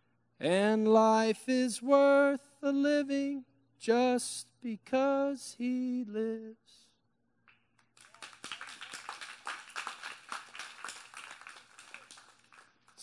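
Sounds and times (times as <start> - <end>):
audience clapping: 7.5 - 13.0.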